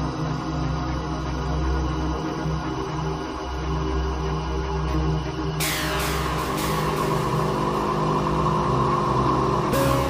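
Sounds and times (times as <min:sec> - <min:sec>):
electronic droning music: 0:00.0 - 0:10.0.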